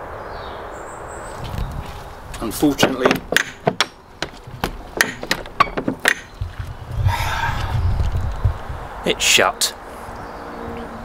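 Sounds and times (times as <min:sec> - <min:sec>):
door latch rattling: 0:02.6 - 0:06.4
rushing noise with low rumble: 0:06.4 - 0:09.1.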